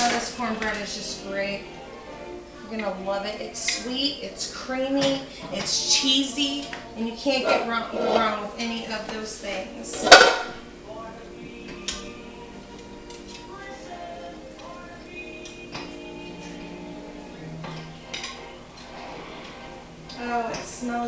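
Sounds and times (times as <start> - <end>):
soft background music: 0.0 - 21.0
metal fork scraping baking dish: 7.4 - 8.6.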